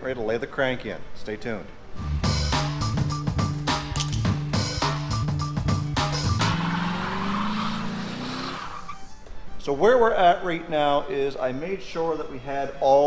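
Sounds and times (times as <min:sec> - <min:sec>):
music with steady beat: 0:02.0 - 0:06.7
car engine revving: 0:04.5 - 0:09.0.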